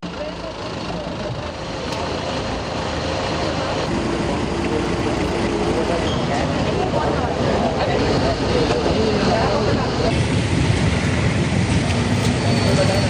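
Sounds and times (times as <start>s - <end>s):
crowd talking: 0.0s - 13.0s
vehicle engines running: 0.0s - 13.0s.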